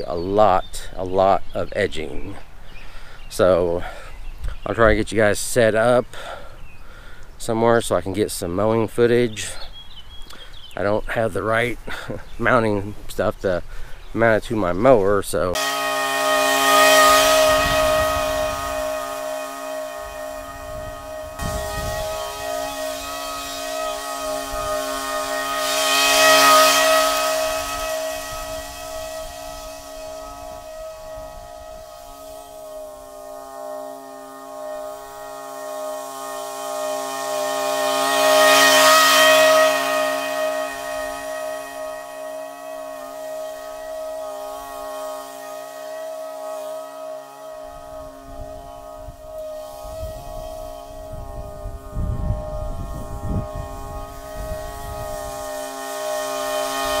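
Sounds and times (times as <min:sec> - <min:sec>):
lawn mower running: 0:06.2 - 0:07.5, 0:15.5 - 0:57.0.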